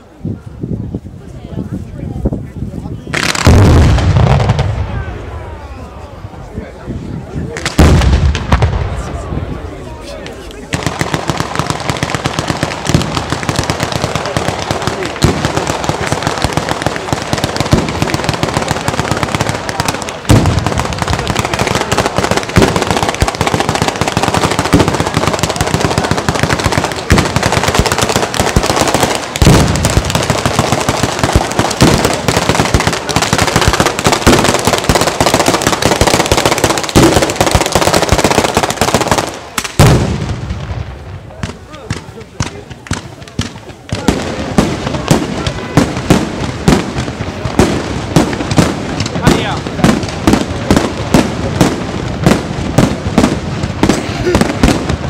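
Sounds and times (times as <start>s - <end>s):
firecrackers crackling: 1.2s - 55.0s
heavy firework booms: 3.1s - 6.4s, 7.5s - 9.8s, 10.7s - 55.0s.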